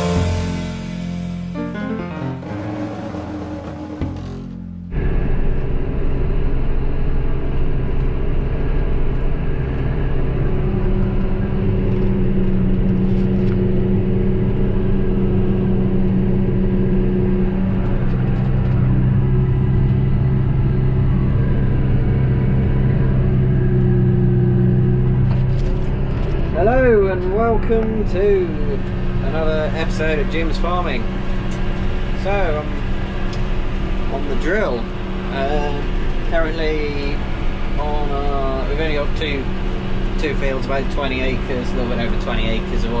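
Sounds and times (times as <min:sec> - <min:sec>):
deeper hum: 0:00.0 - 0:43.0
tractor engine droning: 0:00.0 - 0:43.0.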